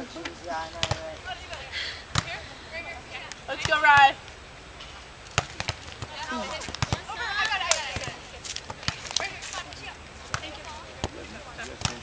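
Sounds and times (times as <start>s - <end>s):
volleyball smack by hand: 0.8s - 2.4s, 5.3s - 9.3s.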